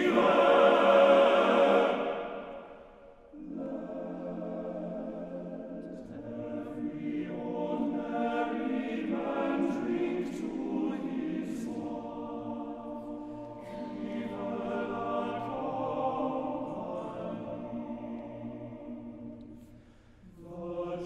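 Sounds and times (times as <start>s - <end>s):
choir singing sustained chords: 0.0s - 21.0s.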